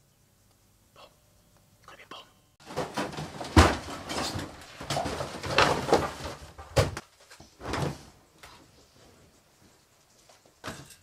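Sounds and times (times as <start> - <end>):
objects clattering and rustling: 2.6 - 11.0.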